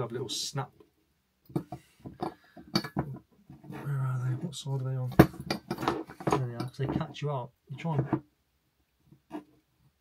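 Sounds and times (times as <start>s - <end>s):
glass globe clicks and knocks: 1.5s - 3.2s, 5.1s - 7.1s.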